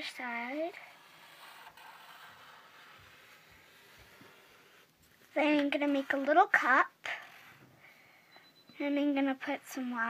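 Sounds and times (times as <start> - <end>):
marker scratching on paper: 0.2 - 7.7.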